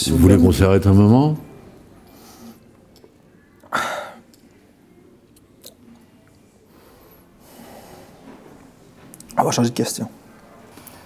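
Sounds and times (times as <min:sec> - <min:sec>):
faint breath: 0:02.0 - 0:02.8, 0:06.6 - 0:08.6.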